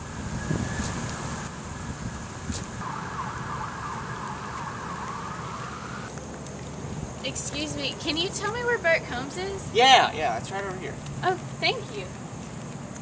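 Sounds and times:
steady high hiss: 0.0 - 12.9.

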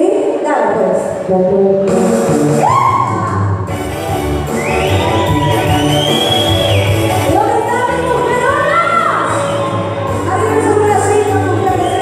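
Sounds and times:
backing music with bass line: 0.9 - 12.0.

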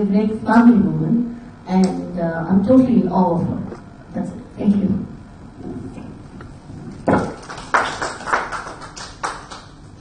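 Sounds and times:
sparse applause: 7.2 - 9.7.

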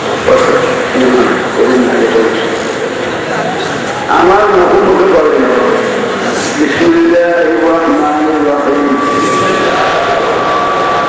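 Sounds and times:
man preaching over loudspeaker: 0.2 - 2.6, 4.1 - 10.5.

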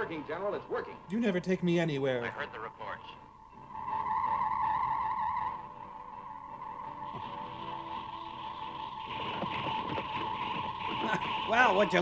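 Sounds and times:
hissing buzz: 3.2 - 12.0
high-pitched electronic tone: 3.4 - 12.0.

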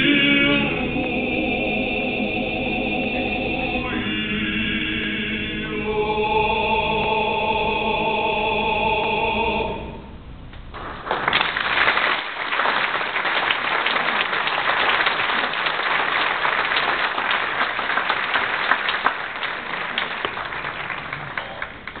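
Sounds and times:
audience applauding: 10.7 - 22.0.

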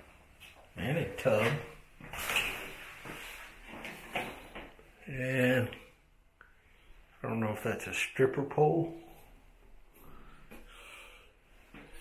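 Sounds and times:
rustling: 1.4 - 4.8.

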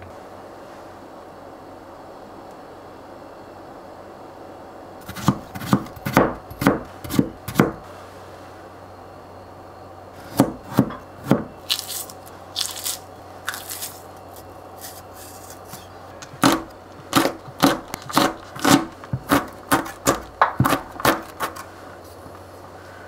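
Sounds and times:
knife slicing cucumber on board: 5.0 - 7.8, 14.8 - 21.6.

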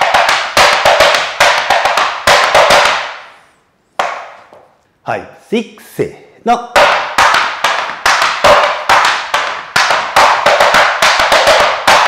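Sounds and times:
tap shoes on wooden board: 0.0 - 3.2, 4.0 - 4.7, 6.8 - 12.0.

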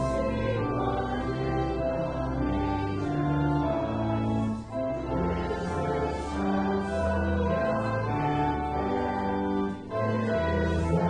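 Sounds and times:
held organ chords: 0.0 - 11.0
voices singing a hymn: 0.0 - 11.0.

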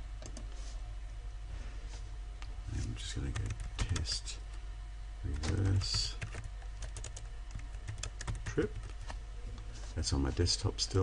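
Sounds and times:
typing on computer keyboard: 5.3 - 9.0.

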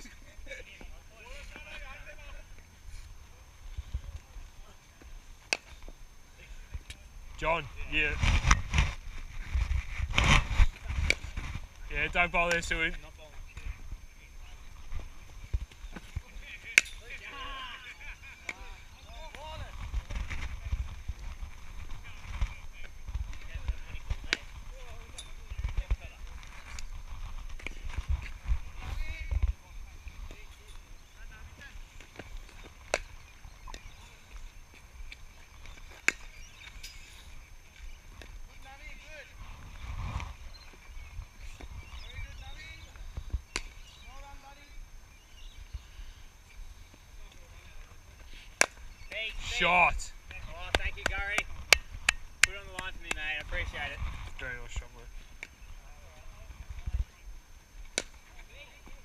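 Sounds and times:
wind rumble on microphone: 6.7 - 12.2, 19.5 - 30.4, 39.2 - 43.5, 53.4 - 54.9.

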